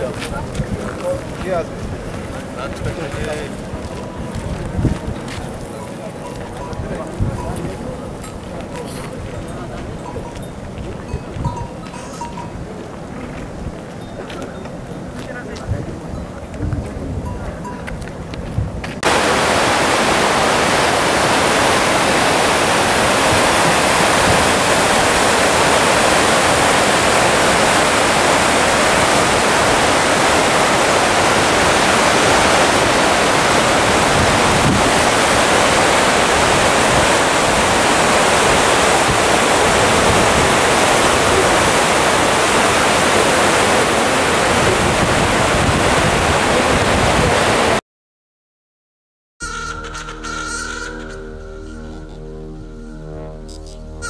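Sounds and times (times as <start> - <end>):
stream rushing over boulders: 0.0 - 11.4, 19.0 - 47.8.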